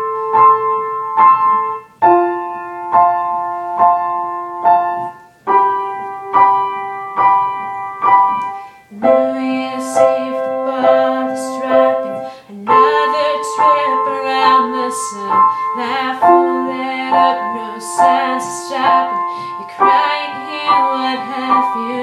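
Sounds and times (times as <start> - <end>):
grand piano chords: 0.0 - 22.0.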